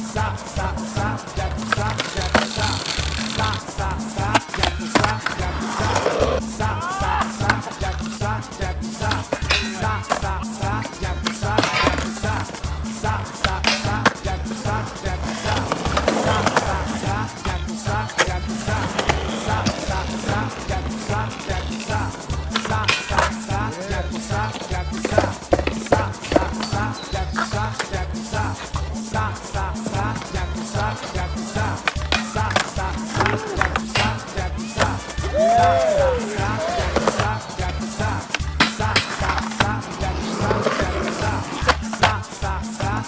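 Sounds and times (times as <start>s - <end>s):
background music with a beat: 0.0s - 43.0s
skateboard clacking: 0.0s - 43.0s
skateboard wheels rolling on concrete: 0.0s - 43.0s.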